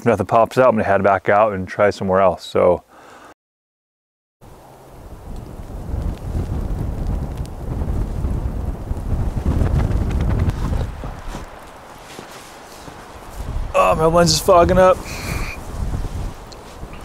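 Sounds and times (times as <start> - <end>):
wind buffeting microphone: 4.8 - 17.0.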